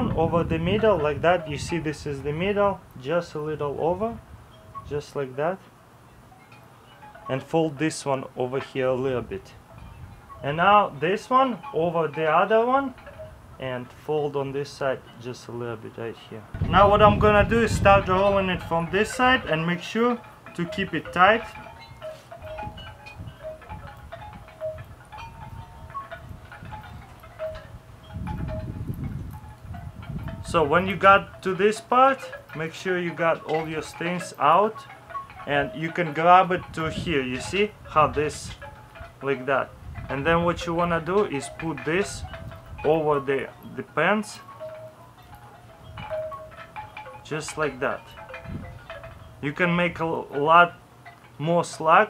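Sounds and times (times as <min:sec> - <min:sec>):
wind chimes ringing: 0:00.0 - 0:52.0
faint rustle: 0:20.2 - 0:31.4.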